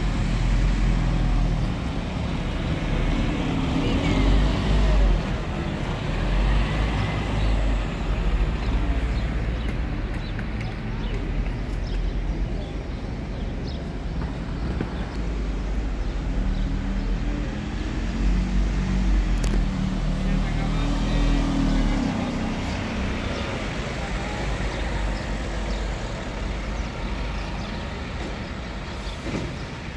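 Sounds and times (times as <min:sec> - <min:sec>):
bus engine rumble passing: 0:00.0 - 0:29.9
street traffic: 0:00.0 - 0:29.9.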